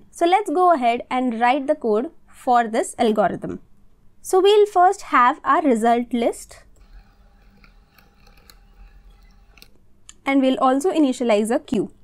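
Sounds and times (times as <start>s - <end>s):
low steady background hum: 0.0s - 12.0s
keyboard keys typing: 6.8s - 9.8s.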